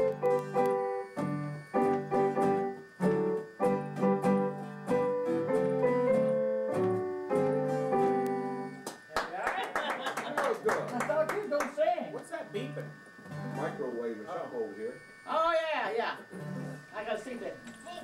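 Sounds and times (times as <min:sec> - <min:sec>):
piano chords and notes: 0:00.0 - 0:08.8
acoustic guitar strumming: 0:00.0 - 0:09.1, 0:10.7 - 0:18.0.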